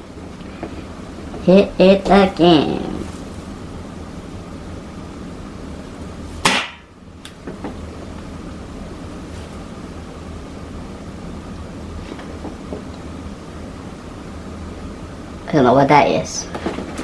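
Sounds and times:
air rifle shot: 0:06.4 - 0:06.9.

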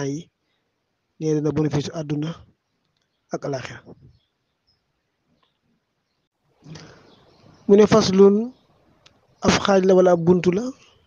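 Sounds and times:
man speaking: 0:00.0 - 0:00.4, 0:01.2 - 0:02.5, 0:03.3 - 0:04.1, 0:07.6 - 0:08.6, 0:09.4 - 0:11.0.

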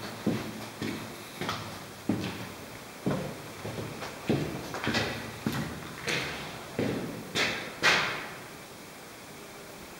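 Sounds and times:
footsteps on hard floor: 0:00.0 - 0:08.1.

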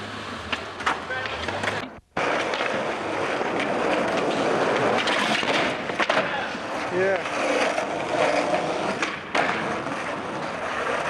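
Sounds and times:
skateboard wheels rolling on concrete: 0:00.0 - 0:11.0
skateboard clicks and knocks: 0:00.1 - 0:11.0.

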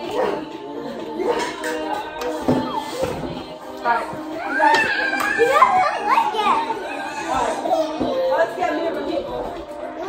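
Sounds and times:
young children talking and playing: 0:00.0 - 0:10.0.

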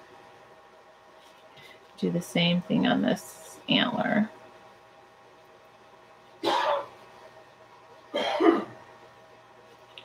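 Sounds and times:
woman coughing: 0:06.4 - 0:06.9, 0:08.1 - 0:08.8.

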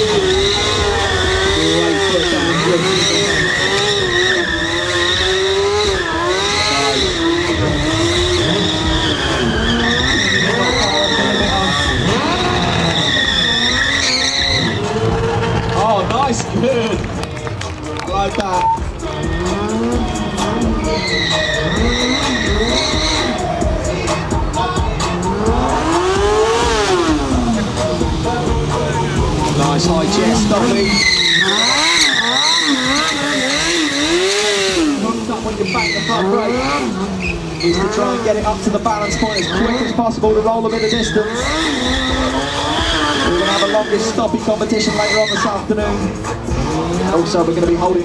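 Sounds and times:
tyre squeal: 0:00.0 - 0:15.9, 0:18.5 - 0:23.8, 0:24.5 - 0:46.0
motorcycle engine revving: 0:00.0 - 0:48.0.

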